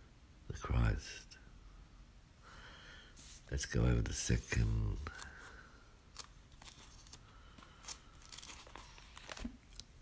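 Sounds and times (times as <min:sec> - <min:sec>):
book pages rustling: 0:04.2 - 0:10.0.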